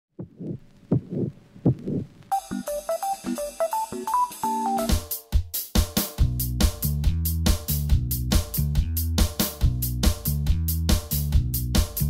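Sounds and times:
heartbeat thumps: 0:00.2 - 0:02.2.

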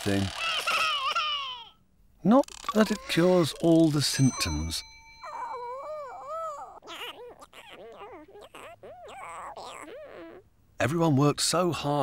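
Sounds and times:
squeaky cartoon voice whimpering: 0:00.0 - 0:01.7, 0:02.4 - 0:10.4.

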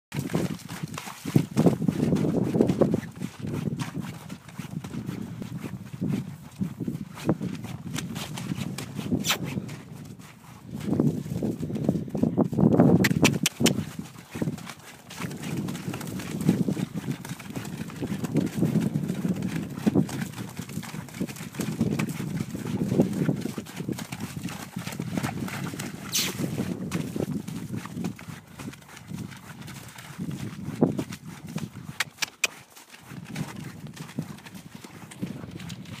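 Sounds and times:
hooves trotting through mud and snow: 0:00.1 - 0:36.0
sharp clicks: 0:13.0 - 0:13.8, 0:32.0 - 0:32.6.

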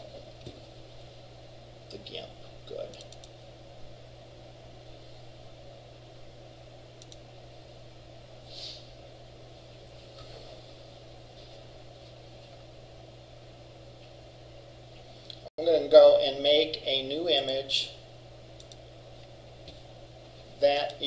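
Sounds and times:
low electrical hum: 0:00.0 - 0:21.0
faint clicks: 0:07.0 - 0:07.2, 0:18.6 - 0:18.8.

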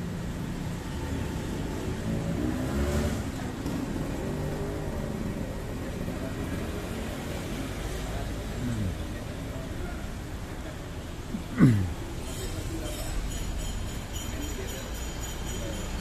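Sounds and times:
steady road traffic: 0:00.0 - 0:16.0
motorbike passing close by: 0:01.6 - 0:05.4.

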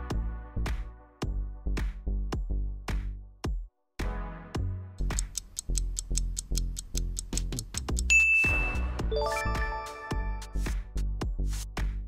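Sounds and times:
bright bell-like ding: 0:08.1 - 0:10.4
rising run of chime notes: 0:08.2 - 0:10.4.

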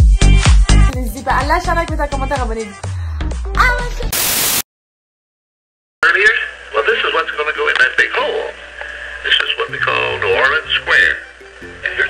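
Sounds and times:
music: 0:00.0 - 0:04.2, 0:06.9 - 0:12.0.

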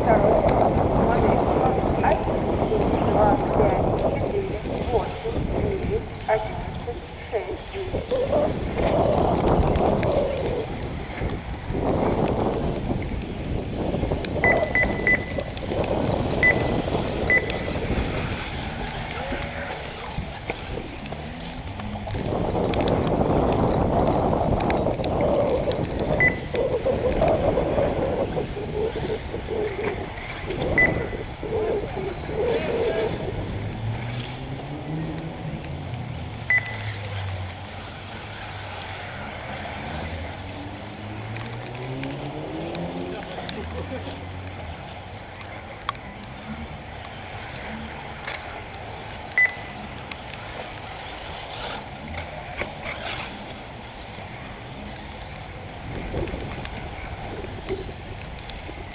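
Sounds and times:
loud rough background noise: 0:00.0 - 0:58.9
short high beeps: 0:14.4 - 0:15.5, 0:16.4 - 0:16.7, 0:17.3 - 0:17.7, 0:26.2 - 0:26.5, 0:30.8 - 0:31.2, 0:36.5 - 0:37.0, 0:49.4 - 0:49.7.

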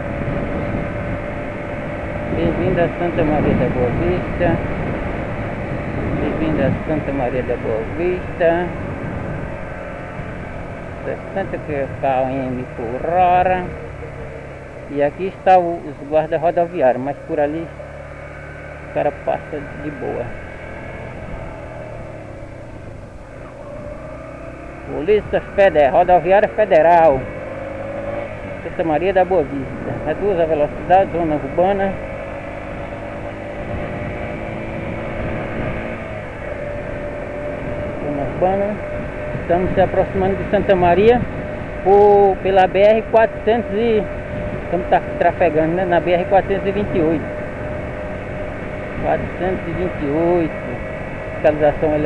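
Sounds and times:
motorcycle engine cruising: 0:00.0 - 0:52.0
wind and road noise: 0:00.0 - 0:52.0.

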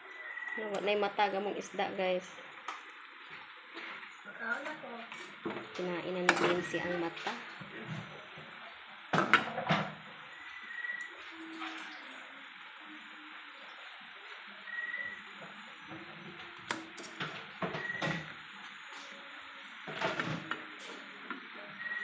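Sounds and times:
faint frying sizzle: 0:00.0 - 0:22.0
metal spatula scraping frying pan: 0:06.2 - 0:07.4.

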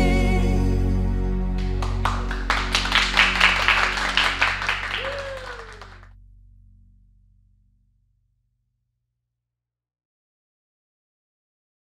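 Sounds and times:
group clapping: 0:01.6 - 0:06.0.

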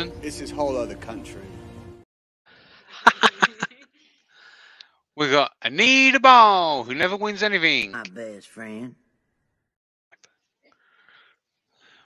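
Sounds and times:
faint breathy sound: 0:04.2 - 0:04.8.

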